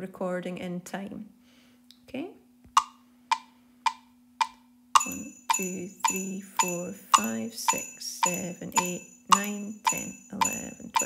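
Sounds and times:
metronome clicks: 2.7s - 11.0s.

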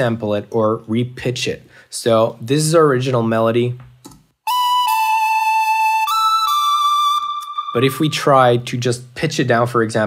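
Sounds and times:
flute-like electronic melody: 4.5s - 8.7s.

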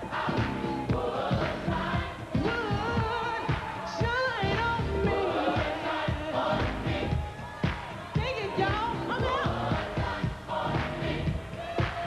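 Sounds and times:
gospel choir singing: 0.0s - 12.0s
band with steady drum beat: 0.3s - 12.0s.

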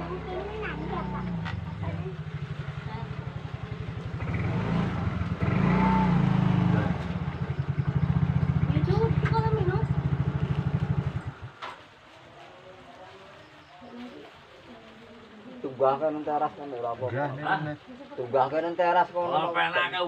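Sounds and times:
motorcycle engine running: 0.0s - 11.9s.

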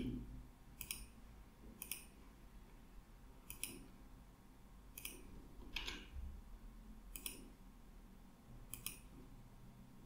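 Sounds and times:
computer mouse clicks: 0.8s - 1.2s, 1.8s - 2.2s, 3.4s - 4.0s, 4.9s - 6.1s, 7.1s - 7.6s, 8.7s - 9.1s.

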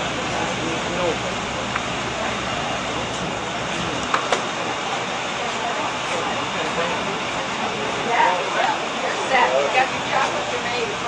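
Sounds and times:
faint indistinct voices talking: 0.0s - 11.0s.

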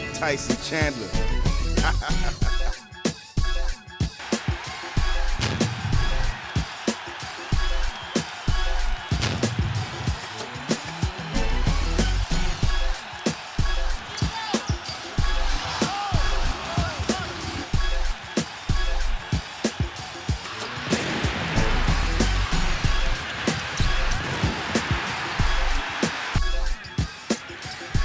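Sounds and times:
music with heavy bass beat: 0.6s - 28.0s.

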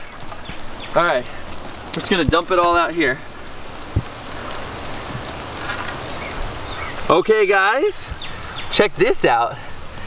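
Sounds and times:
rain on water and concrete: 0.0s - 10.0s
dull low thump: 3.9s - 4.1s.

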